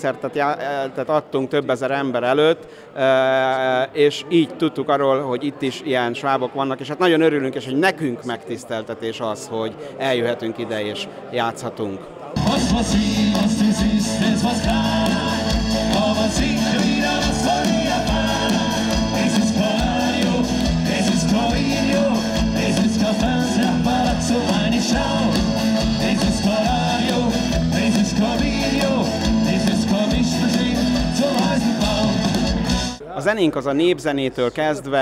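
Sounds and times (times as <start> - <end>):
man singing: 12.4 - 32.7
drums: 12.4 - 33.0
live rock band: 12.4 - 33.0.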